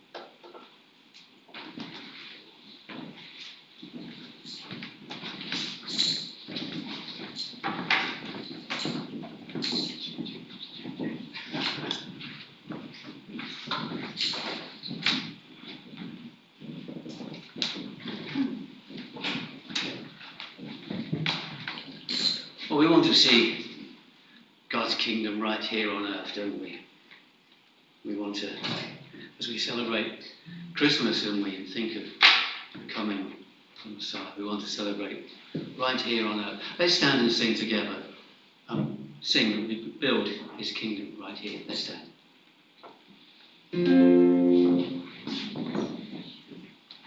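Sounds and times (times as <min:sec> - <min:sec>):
knocks taps and shuffles: 0:00.1 - 0:22.7, 0:35.3 - 0:35.9, 0:45.0 - 0:47.0
indistinct voices: 0:05.5 - 0:12.4, 0:30.4 - 0:31.3.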